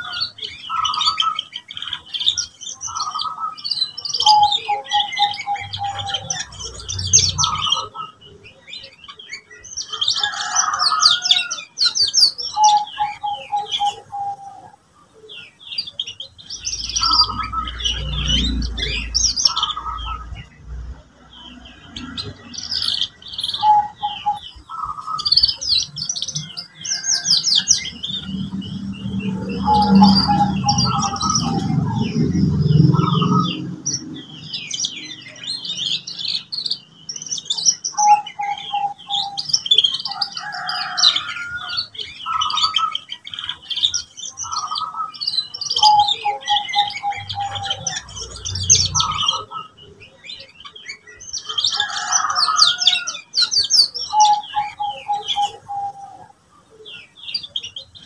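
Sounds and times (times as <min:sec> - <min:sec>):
canary singing trills: 0:00.0 - 0:58.0.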